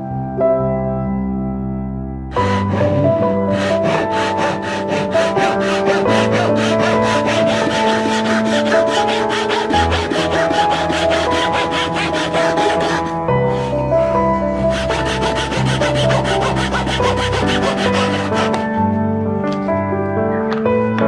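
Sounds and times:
handsaw cutting wood: 2.3s - 18.8s.

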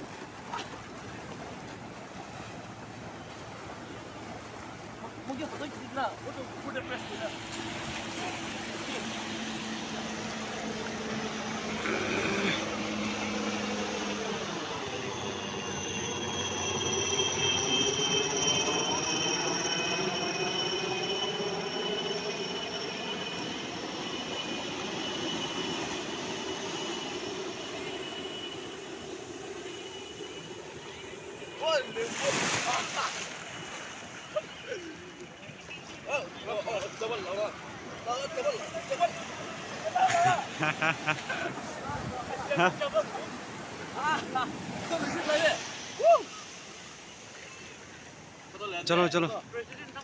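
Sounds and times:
surf washing: 0.0s - 50.0s
jet aircraft passing overhead: 0.6s - 50.0s.

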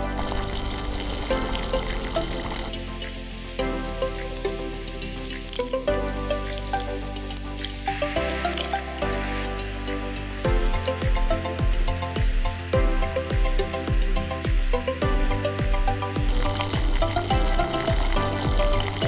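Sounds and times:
loud crackling: 0.0s - 15.1s
background music: 0.0s - 19.0s.

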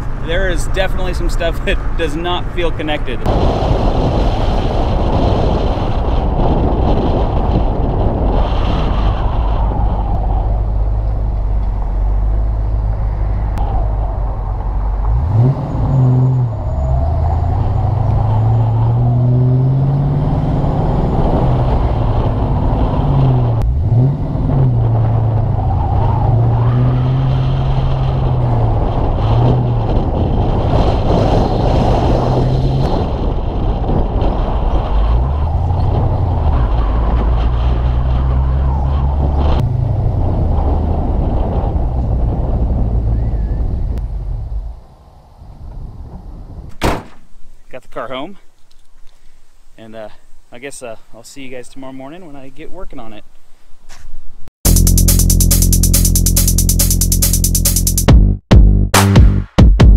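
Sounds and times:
car engine revving: 0.0s - 44.6s, 54.7s - 59.9s
road noise: 0.0s - 58.1s.

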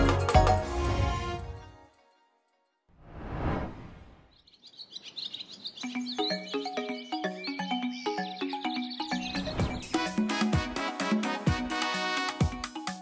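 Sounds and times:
whooshing swell: 3.0s - 4.3s
birds chirping: 4.0s - 10.4s
light background music: 5.8s - 13.0s.

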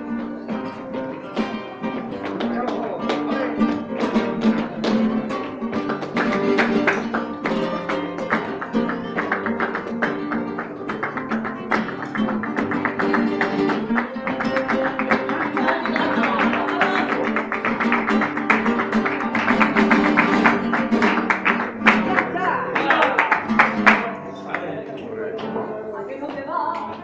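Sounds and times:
acoustic guitars strumming: 0.0s - 26.3s
hand-clapping: 0.6s - 27.0s.

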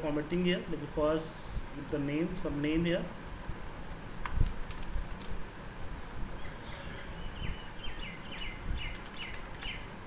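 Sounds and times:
computer keyboard typing: 4.2s - 5.3s, 7.0s - 9.8s
bird chirping: 6.4s - 10.0s.

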